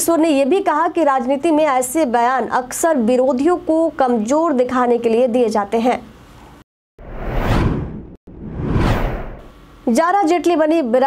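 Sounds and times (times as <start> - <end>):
whoosh sound effects: 7.0 - 9.5.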